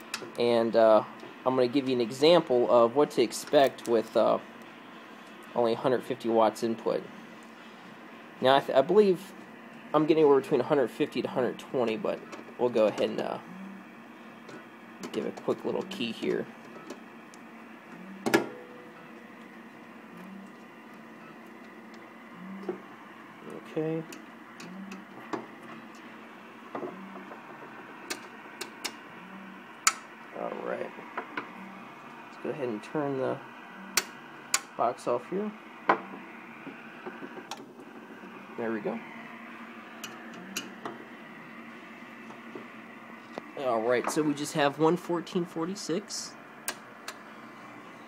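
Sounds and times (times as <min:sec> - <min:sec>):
low electrical hum: 0:00.0 - 0:48.0
steady low hiss: 0:00.0 - 0:48.0.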